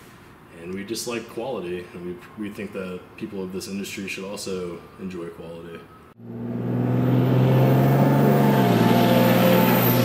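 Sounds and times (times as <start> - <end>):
vehicle engine running: 6.2 - 10.0.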